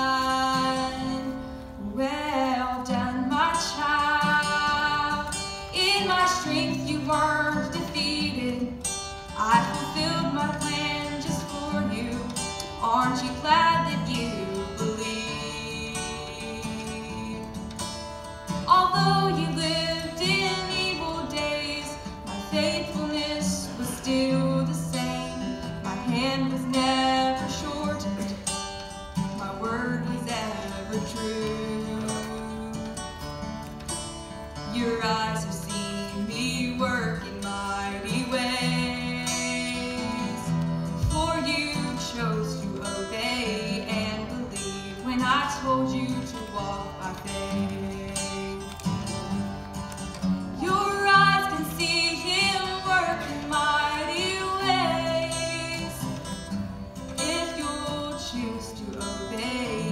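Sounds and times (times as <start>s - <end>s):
woman singing: 0.0s - 49.6s, 50.4s - 59.9s
acoustic guitar: 0.0s - 59.9s.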